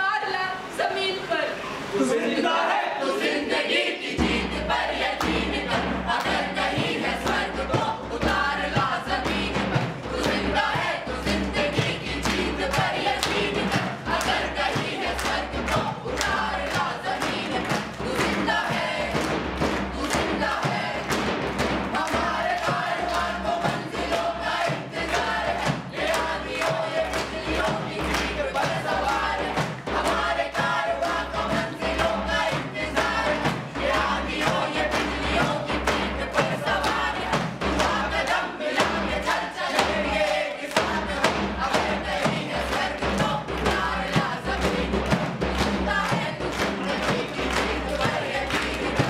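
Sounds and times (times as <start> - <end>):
group singing a chant: 0.0 - 49.0
sharp percussive beats: 3.2 - 49.0.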